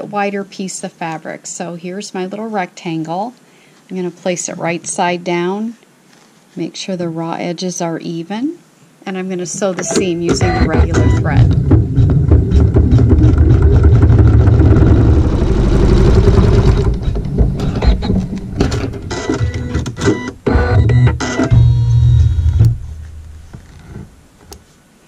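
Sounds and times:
embroidery machine stitching: 9.8s - 21.4s.

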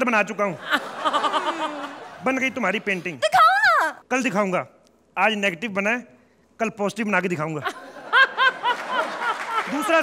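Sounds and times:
studio audience laughter: 0.5s - 3.2s, 7.6s - 10.0s
woman laughing hard: 0.6s - 2.1s.

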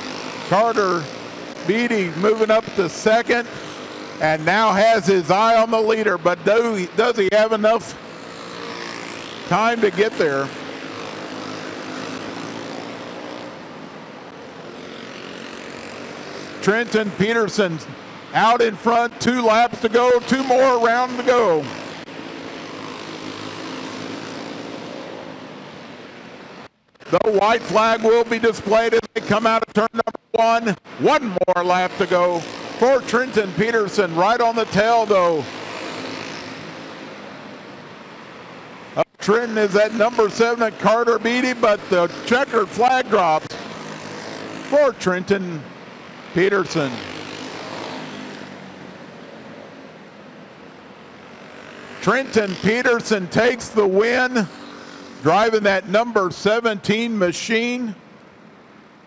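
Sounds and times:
small kart engines racing: 0.0s - 58.5s.

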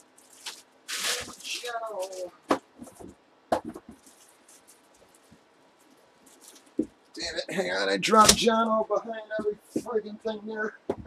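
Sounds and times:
plastic packaging rustling: 0.0s - 6.9s.

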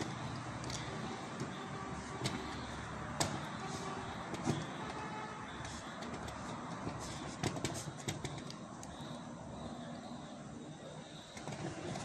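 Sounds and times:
steady background noise: 0.0s - 12.0s
cloth rubbing on metal: 3.5s - 4.2s.

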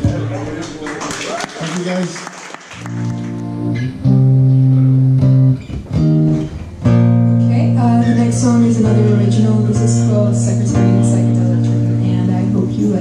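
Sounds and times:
acoustic guitar chords strummed: 2.9s - 13.0s.

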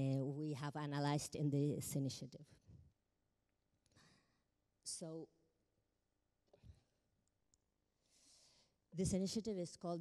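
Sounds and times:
faint breath close to microphone: 8.0s - 8.9s.

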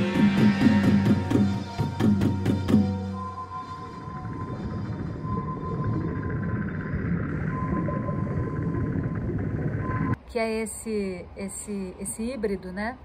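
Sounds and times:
low noisy ambient drone: 0.0s - 12.0s
thin steady high tone: 2.9s - 8.8s.

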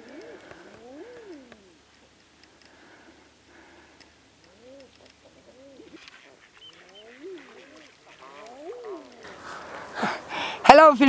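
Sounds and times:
birds cooing: 0.0s - 10.6s.

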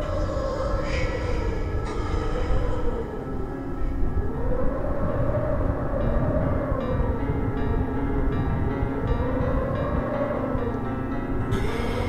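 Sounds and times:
dark horror score drone: 0.0s - 12.0s.

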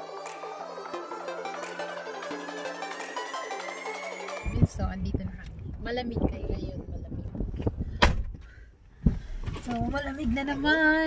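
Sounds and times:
wind buffeting microphone: 4.5s - 8.4s.

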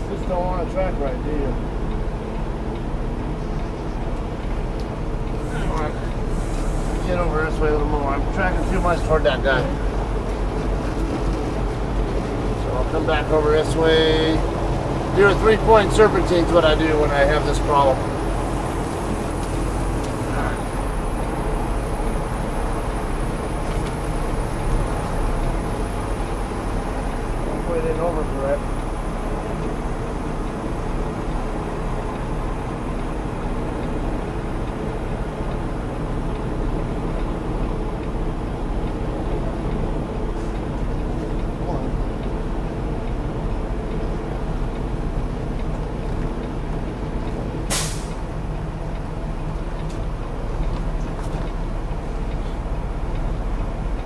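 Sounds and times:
diesel engine running: 0.0s - 54.0s
air brakes hissing: 5.4s - 7.4s, 47.7s - 48.2s.

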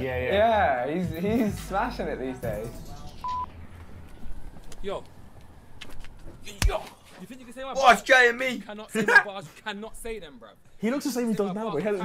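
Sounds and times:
short electronic beep: 3.2s - 3.5s.

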